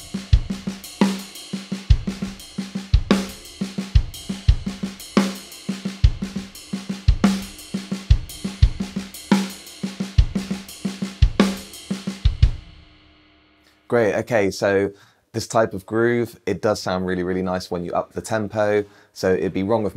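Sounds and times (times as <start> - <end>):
snare drum: 0.0 - 12.6
bass drum: 0.0 - 13.0.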